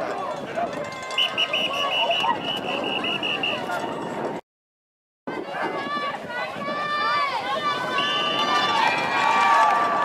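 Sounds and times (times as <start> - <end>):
crowd yelling and cheering: 5.5 - 10.0.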